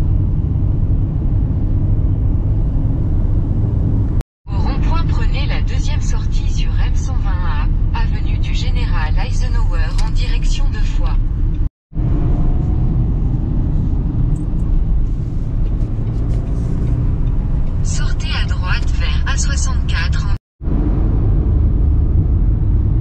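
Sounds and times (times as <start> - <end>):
car road and engine rumble: 0.0 - 23.0
voices talking: 17.9 - 20.4.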